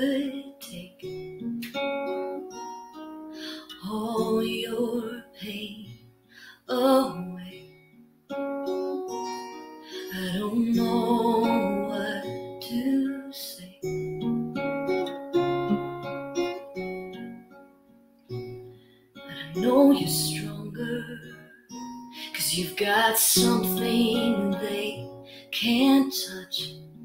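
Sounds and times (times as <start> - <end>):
woman singing wordlessly: 0.0 - 1.1, 3.4 - 6.0, 6.6 - 7.8, 9.9 - 13.9, 19.3 - 27.0
acoustic guitar ballad: 0.0 - 27.0.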